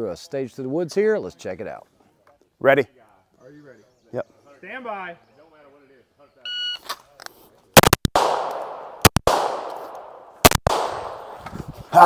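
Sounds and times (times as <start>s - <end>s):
handgun shots with echo: 7.8s - 11.4s.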